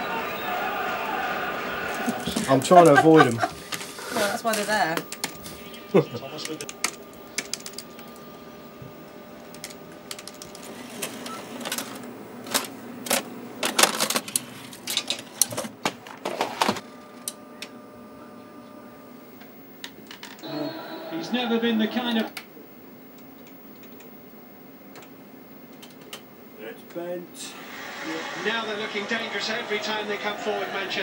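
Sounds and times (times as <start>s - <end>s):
electrical hum: 0.0s - 31.0s
tape cassette in tape machine: 1.9s - 17.9s.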